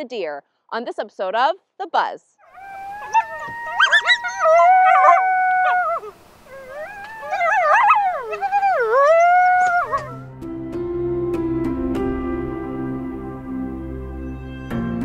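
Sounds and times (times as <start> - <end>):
coyotes howling and yipping: 2.4 - 10.3
soft background music: 8.6 - 15.0.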